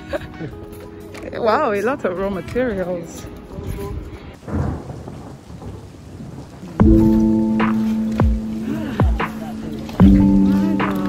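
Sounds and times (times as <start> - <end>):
background music with held notes: 0.0 - 4.4, 6.8 - 11.0.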